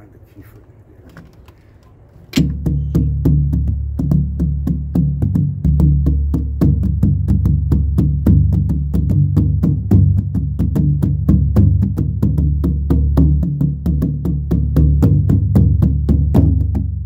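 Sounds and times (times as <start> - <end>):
hand drum strokes: 2.4 - 17.0.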